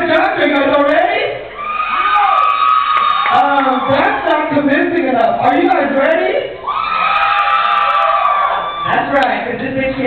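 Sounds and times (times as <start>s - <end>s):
high-pitched whoop: 1.6s - 4.2s, 6.6s - 9.0s.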